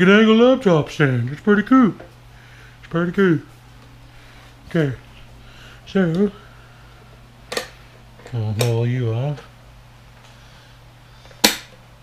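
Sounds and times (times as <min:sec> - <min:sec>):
sharp snap: 0:11.4 - 0:11.8.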